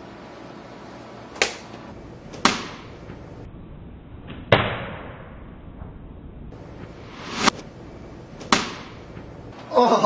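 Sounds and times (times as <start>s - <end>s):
slap to the face: 1.4s - 1.7s, 4.5s - 5.2s, 8.4s - 9.0s.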